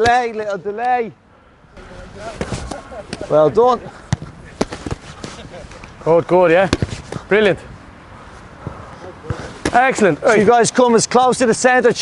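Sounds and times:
footballs thudding on pitch: 2.3 - 3.3, 4.0 - 5.8, 6.6 - 7.3, 8.6 - 10.0
sharp ball strikes: 4.1 - 5.4, 6.6 - 7.2.

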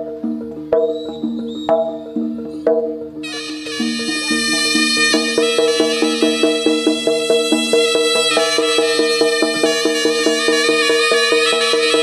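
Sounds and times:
gamelan metal percussion: 0.0 - 12.0
thin high held tone: 3.2 - 12.0.

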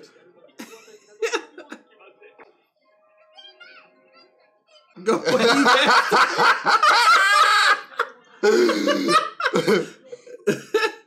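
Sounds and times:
men laughing hard: 5.1 - 9.9.

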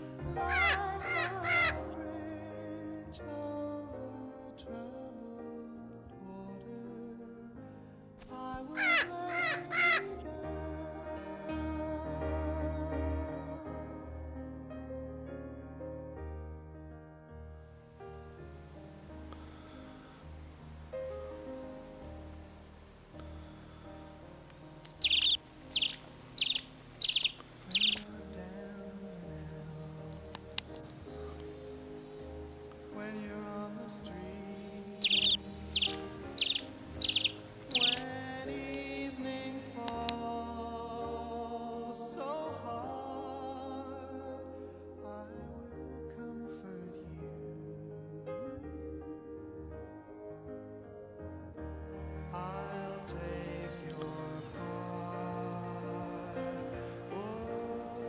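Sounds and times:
short bird calls: 0.0 - 1.9, 8.8 - 10.1, 19.3 - 28.2, 34.2 - 38.2
bird chirping: 0.0 - 4.0, 8.2 - 13.7, 18.1 - 41.5, 51.6 - 58.0
background music with sustained notes: 0.0 - 58.0.

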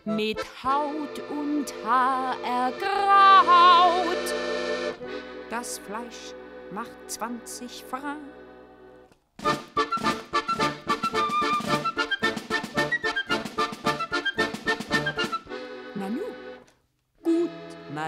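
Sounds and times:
small instrumental ensemble playing: 0.0 - 7.6, 8.4 - 17.9.

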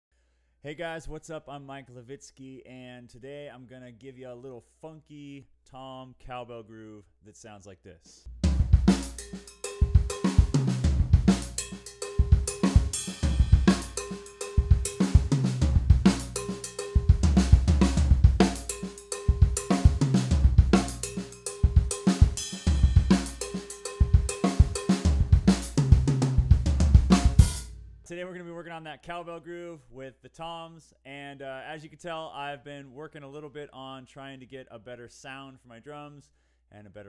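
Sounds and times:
drum kit funk groove: 8.2 - 27.8
cowbell: 9.3 - 10.3, 11.6 - 15.0, 16.4 - 17.1, 18.7 - 19.8, 21.0 - 25.0.

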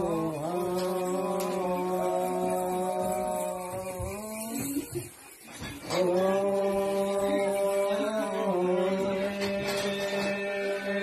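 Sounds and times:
person chanting a long note: 0.0 - 4.3, 5.9 - 11.0.

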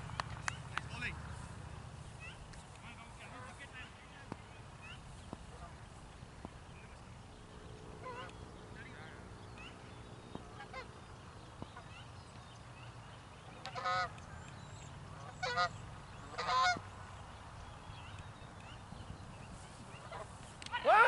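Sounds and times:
geese honking: 2.2 - 3.9, 4.8 - 5.8, 8.0 - 9.7, 10.5 - 11.0, 13.6 - 14.2, 15.2 - 16.8, 20.0 - 21.0.

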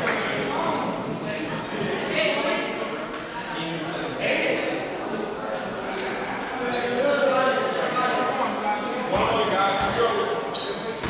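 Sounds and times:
crowd chatter in gymnasium: 0.0 - 11.0
basketball bouncing on court: 9.2 - 10.1.

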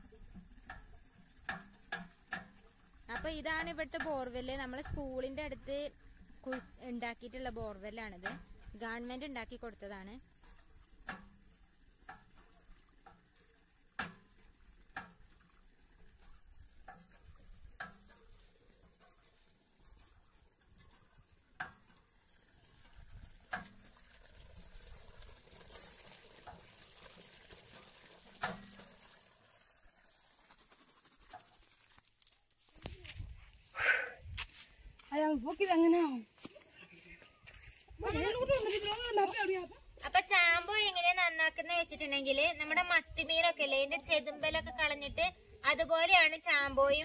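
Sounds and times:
hand pump handle knocking: 0.2 - 20.1.

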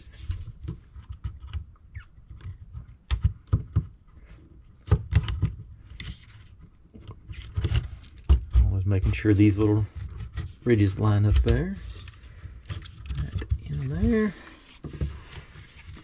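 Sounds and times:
wooden parts clicking and knocking: 0.2 - 4.0, 11.0 - 16.0.

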